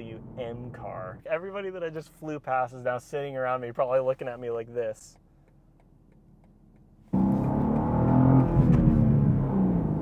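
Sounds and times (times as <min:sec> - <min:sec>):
car engine accelerating: 0:07.1 - 0:10.0.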